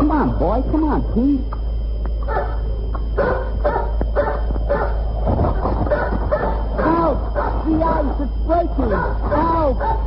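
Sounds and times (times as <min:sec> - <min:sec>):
steady low hum: 0:00.0 - 0:10.0
dog barking and yipping: 0:02.3 - 0:02.6, 0:03.2 - 0:07.7, 0:08.8 - 0:10.0.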